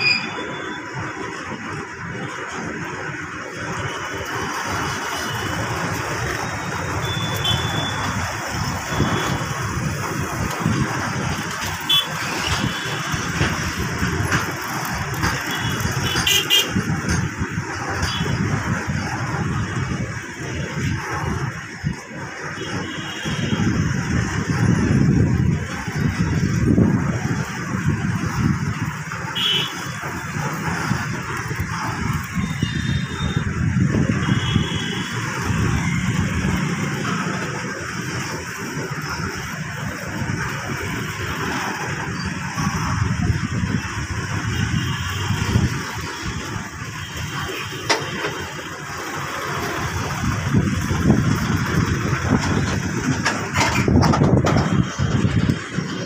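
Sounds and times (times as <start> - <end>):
high squeals: 0.0 - 0.8
freight train wheels clattering: 4.3 - 18.6, 47.7 - 56.0.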